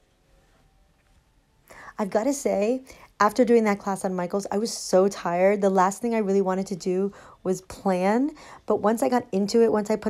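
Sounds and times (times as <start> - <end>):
woman breathing in: 1.7 - 2.0, 7.1 - 7.4, 8.4 - 8.7
woman speaking: 1.9 - 10.0.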